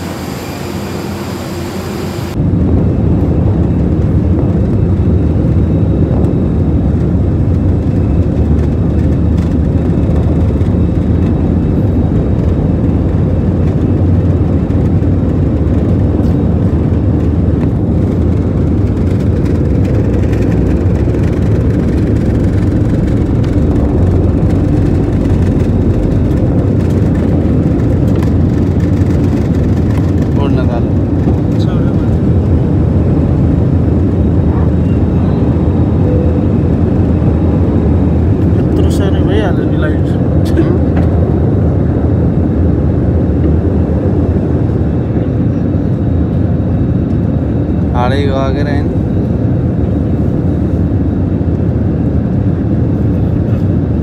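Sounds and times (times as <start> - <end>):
jet engines rumbling in cabin: 0.0 - 54.0.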